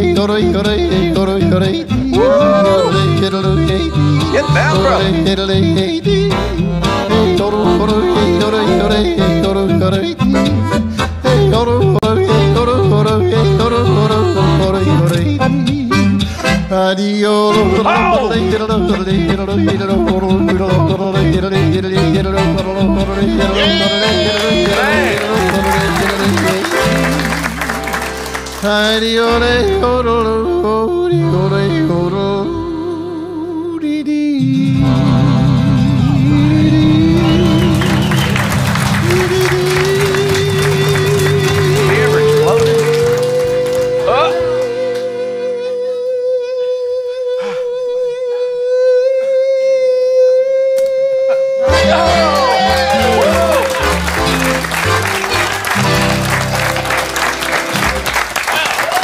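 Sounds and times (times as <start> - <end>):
upright bass: 0.0 - 45.8, 51.6 - 59.0
accordion: 0.0 - 49.6, 51.6 - 58.5
acoustic guitar: 0.0 - 58.7.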